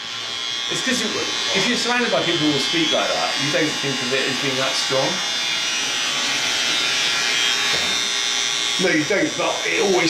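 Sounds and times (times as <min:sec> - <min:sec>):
electric hair clippers buzzing: 0:00.0 - 0:10.0.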